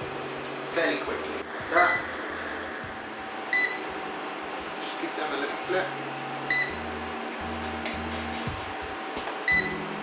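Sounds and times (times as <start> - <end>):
kitchen hum and hiss: 0.0 - 10.0.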